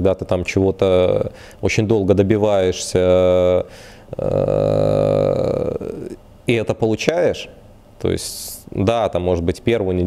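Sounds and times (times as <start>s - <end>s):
man's drawn-out hesitation sound: 2.6s - 9.1s.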